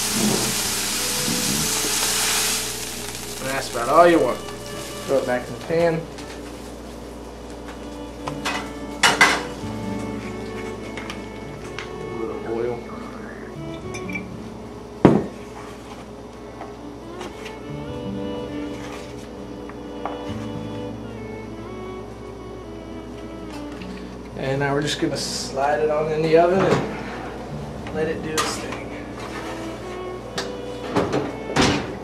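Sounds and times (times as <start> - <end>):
background music: 0.0 - 15.6, 16.3 - 32.0.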